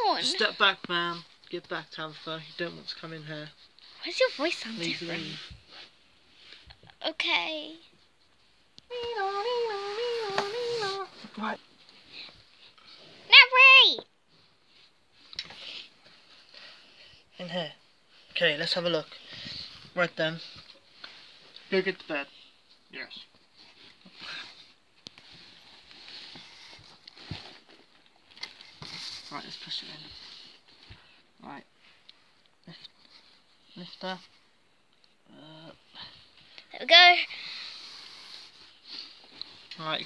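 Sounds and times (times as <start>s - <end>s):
person imitating a siren: 8.9s - 11.1s.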